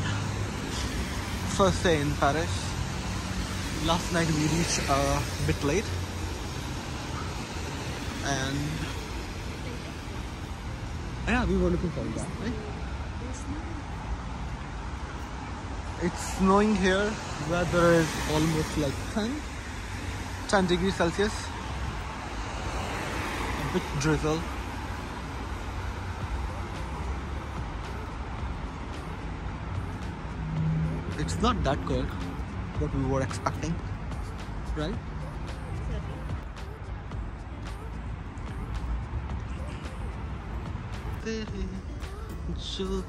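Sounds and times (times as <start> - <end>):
traffic on wet street: 0.0 - 43.0.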